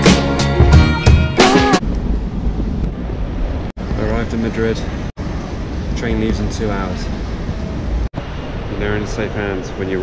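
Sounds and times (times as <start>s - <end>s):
low rumbling: 0.6s - 8.8s
wind buffeting microphone: 1.8s - 9.8s.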